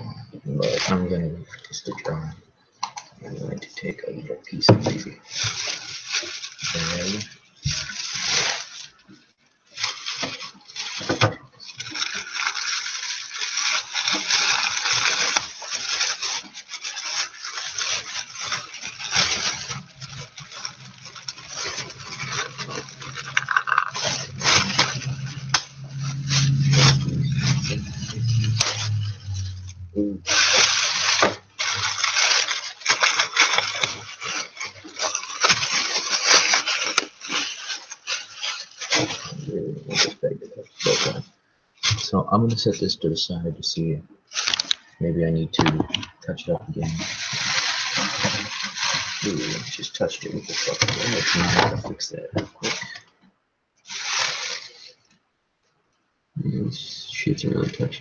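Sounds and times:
plastic bag crinkling: 0.5 - 42.8, 44.3 - 53.2, 53.8 - 55.2, 57.4 - 58.0
low hum: 24.0 - 30.6.

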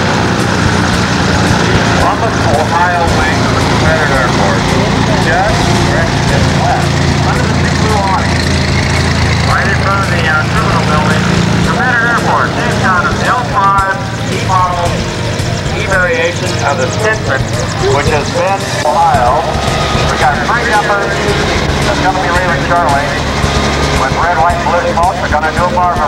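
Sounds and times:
light plane engine droning: 0.0 - 26.0
voices talking: 0.0 - 26.0.

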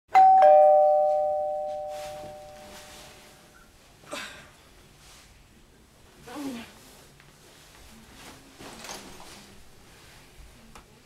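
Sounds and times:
two-note doorbell chime: 0.1 - 3.3.

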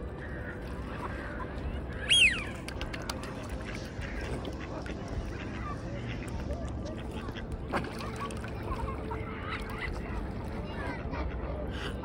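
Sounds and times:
ducks and swans calling: 0.0 - 12.0.

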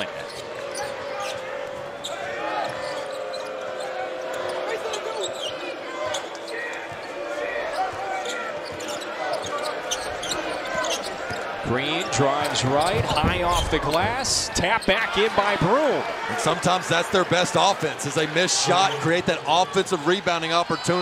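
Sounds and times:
sneaker squeaks: 0.0 - 1.4, 2.0 - 11.5
crowd noise and voices: 0.0 - 21.0.

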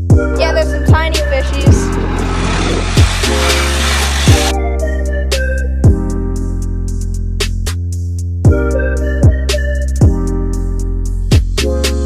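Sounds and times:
bass and keyboard chords: 0.0 - 12.0
hiss-like wash: 1.2 - 4.5.

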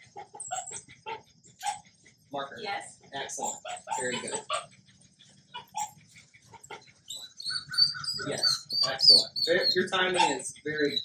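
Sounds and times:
bird chirping: 0.0 - 2.3, 3.1 - 11.0.

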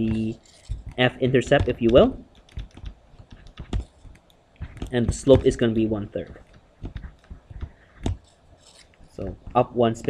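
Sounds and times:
stylus tapping on tablet screen: 0.0 - 10.0.

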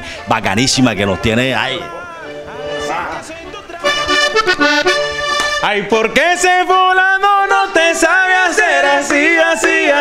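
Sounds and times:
button accordion playing chords: 0.0 - 6.3.

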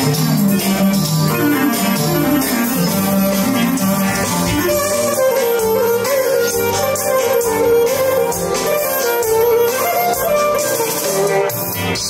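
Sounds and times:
clarinet melody: 0.0 - 12.0
electronic keyboard: 0.0 - 12.0.

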